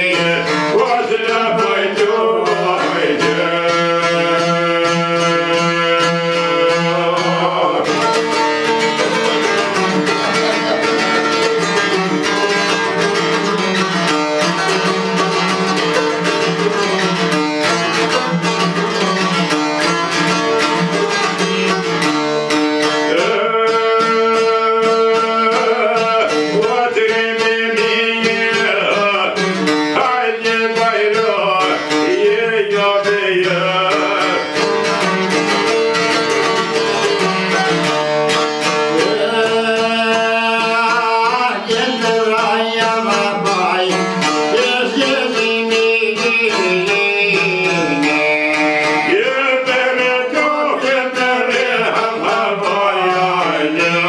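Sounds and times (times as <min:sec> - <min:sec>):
plucked lute melody: 0:00.0 - 0:54.0.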